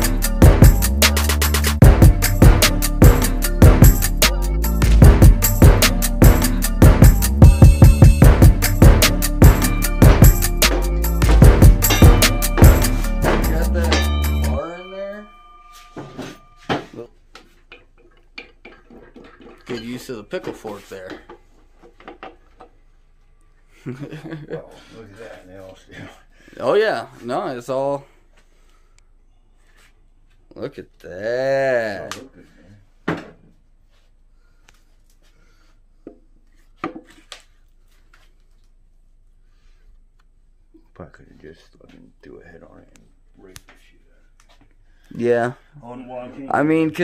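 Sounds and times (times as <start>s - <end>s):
music sting: 7.4s - 14.7s
metal tools knocking on metal: 17.6s - 22.7s.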